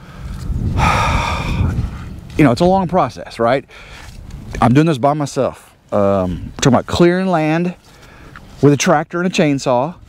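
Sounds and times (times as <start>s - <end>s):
man sighing: 0.8s - 1.8s.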